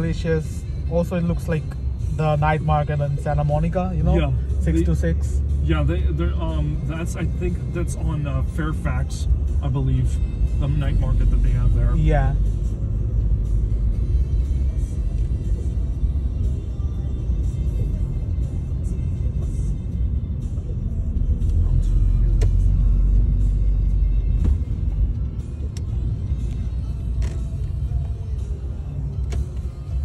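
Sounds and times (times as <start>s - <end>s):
car cabin road rumble: 0.0s - 30.0s
music playing: 0.0s - 30.0s.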